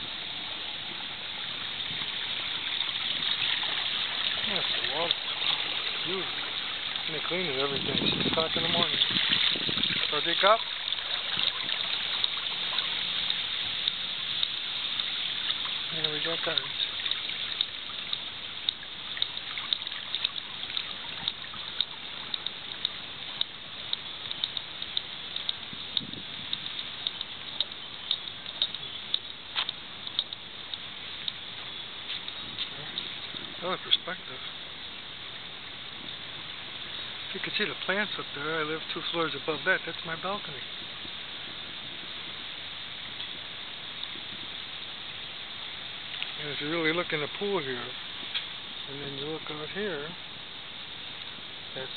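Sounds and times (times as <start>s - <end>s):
outdoor background hiss: 0.0s - 51.9s
trickling water: 0.0s - 51.9s
light clicks and taps: 16.0s - 31.4s.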